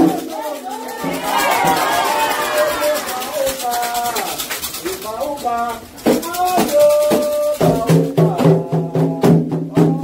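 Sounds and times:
metal hand bell rattling: 0.0 - 7.8
quick percussion beat: 0.0 - 10.0
voices singing and calling: 0.1 - 3.9.

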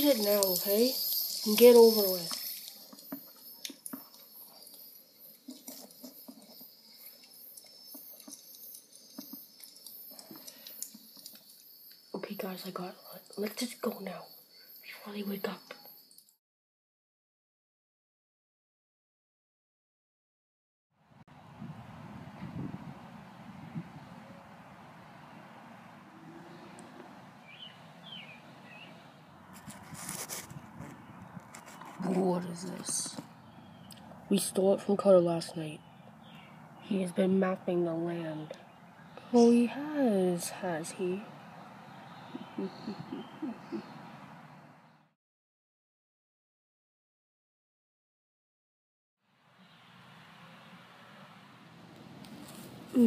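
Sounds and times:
bird chirping: 0.0 - 16.4, 26.1 - 29.2, 30.7 - 45.1
small objects being handled: 0.1 - 11.7
rustle: 21.5 - 34.2, 49.4 - 53.0.

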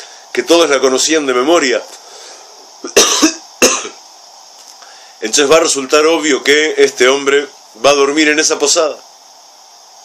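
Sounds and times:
man coughing into hands: 2.8 - 4.0.

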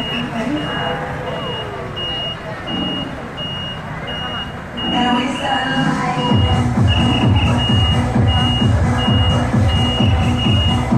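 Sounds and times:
electronic dance music: 0.0 - 10.9
high electronic beep: 0.0 - 10.9.

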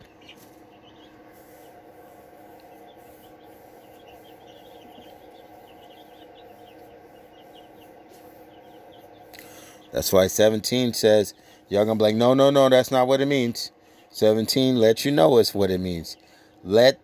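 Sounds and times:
high chirps: 0.0 - 10.1
steady low hum: 0.0 - 17.0.

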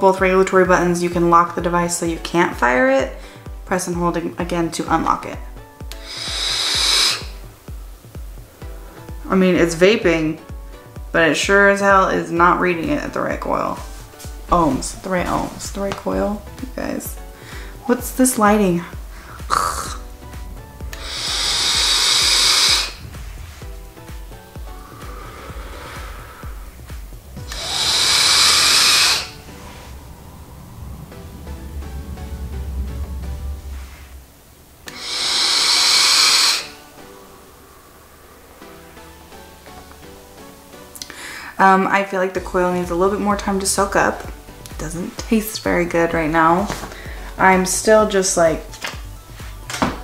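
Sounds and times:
background music with steady beat: 0.0 - 50.0
vape hissing during inhale: 5.6 - 9.3, 19.1 - 30.1, 34.8 - 41.4
person drawing on vape: 6.0 - 7.2.

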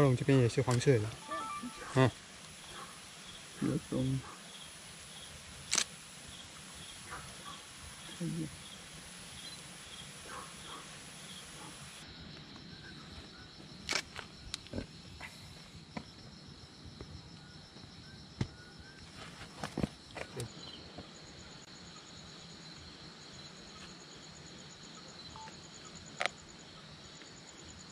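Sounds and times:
night insects chirping: 0.0 - 27.9.

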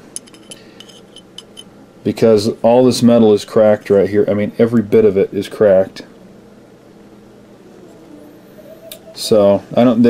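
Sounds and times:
metal tool tapping on metal: 0.2 - 1.7.

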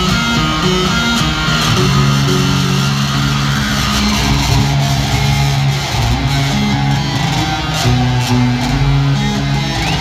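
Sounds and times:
electric guitar playing rock: 0.0 - 10.0
held bass guitar notes: 0.0 - 10.0.

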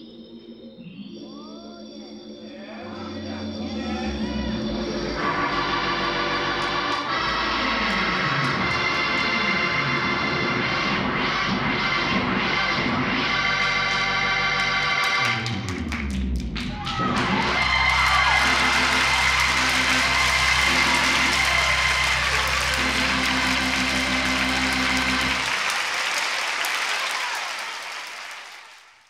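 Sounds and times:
audience clapping and cheering: 6.4 - 10.4, 13.6 - 29.0
low held chord: 18.2 - 25.5.

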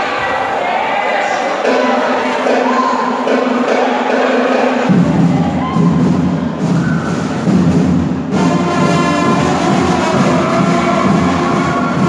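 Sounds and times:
crowd murmur: 0.0 - 12.0
brass marching band: 3.3 - 12.0.

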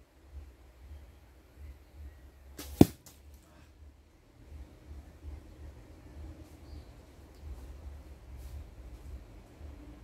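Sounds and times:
arrow striking with thud: 2.6 - 3.2.

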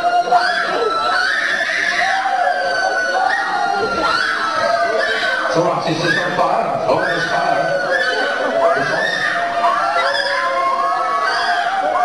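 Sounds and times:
congregation crying out and wailing: 0.0 - 12.0.

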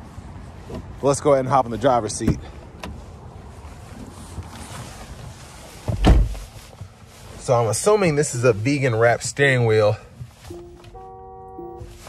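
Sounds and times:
car horn chord: 10.5 - 12.0.

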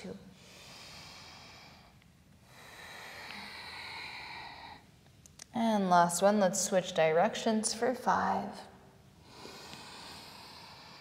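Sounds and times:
woman breathing slowly: 0.2 - 5.1, 9.1 - 11.0.

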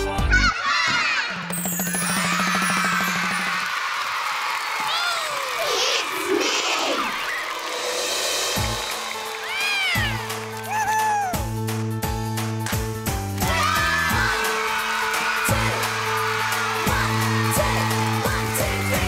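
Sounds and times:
music intro: 7.4 - 19.0.

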